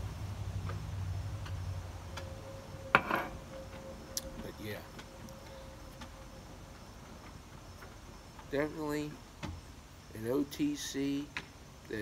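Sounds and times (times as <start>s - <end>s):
mug set down on tiles: 3.0s - 3.3s.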